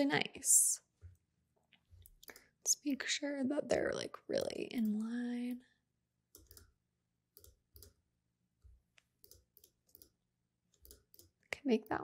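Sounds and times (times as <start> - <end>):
computer mouse and key clicks: 2.0 - 2.5, 6.3 - 8.0, 8.9 - 12.0.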